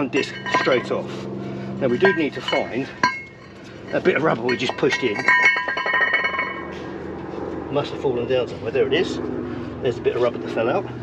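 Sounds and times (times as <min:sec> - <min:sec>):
struck metal part ringing: 0:00.0 - 0:01.1, 0:01.8 - 0:06.7.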